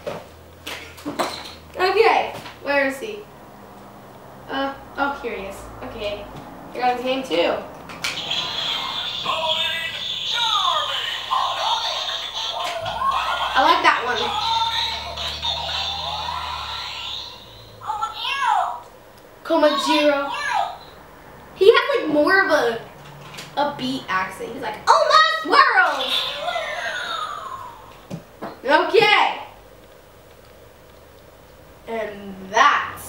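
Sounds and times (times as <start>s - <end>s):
toy electronic tune: 8.2s - 17.8s
girl speaking: 12.8s - 15.1s, 17.8s - 21.0s, 21.6s - 22.9s, 23.6s - 27.8s, 28.6s - 29.5s, 31.9s - 33.0s.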